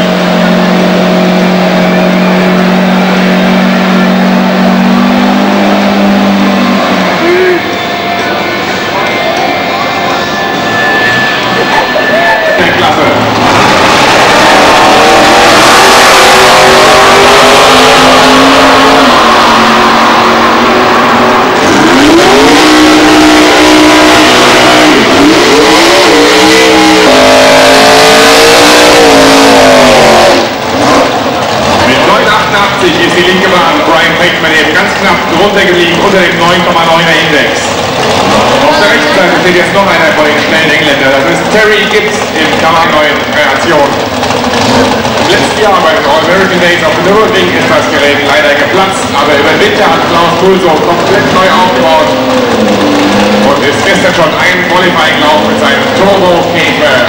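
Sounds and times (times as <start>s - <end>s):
car engine at high revs: 0.0s - 57.0s
drag racing cars at full throttle: 0.0s - 57.0s.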